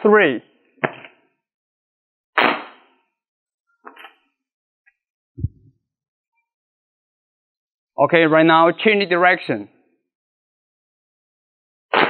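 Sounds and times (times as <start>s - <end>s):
low thump: 5.4s - 5.7s.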